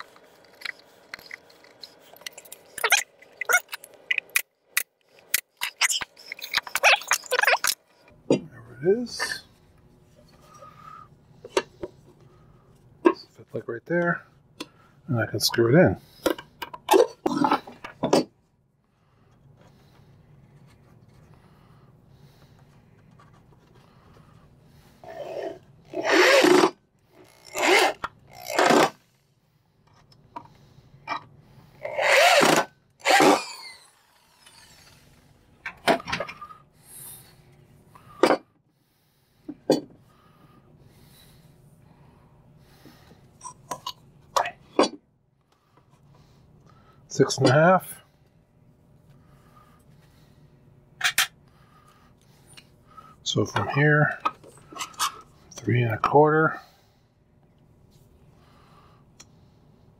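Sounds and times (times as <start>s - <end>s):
low steady hum: 0.0s - 59.9s
power drill driving screws into wood: 25.9s - 29.0s, 31.8s - 35.1s.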